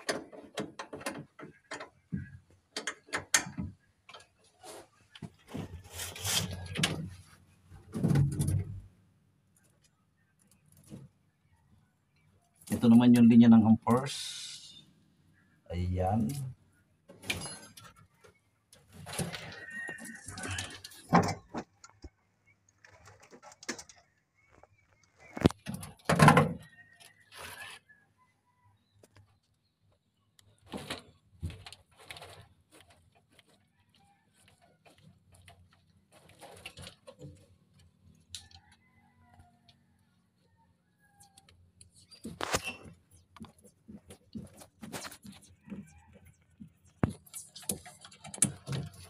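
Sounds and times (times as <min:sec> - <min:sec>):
wires rustling and knocking: 0:00.0 - 0:08.9, 0:30.5 - 0:38.8, 0:41.4 - 0:49.0.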